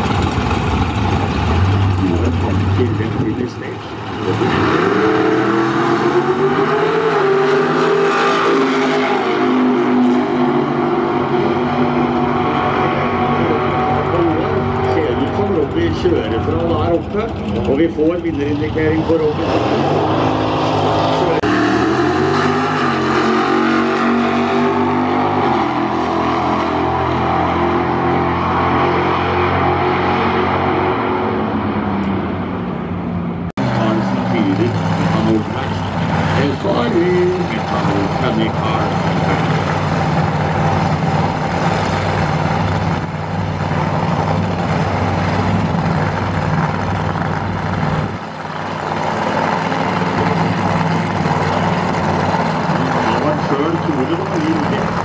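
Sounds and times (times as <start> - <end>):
drag car engine slowing: 0.0 - 30.1, 31.5 - 55.0
race engine running steadily: 0.0 - 55.0.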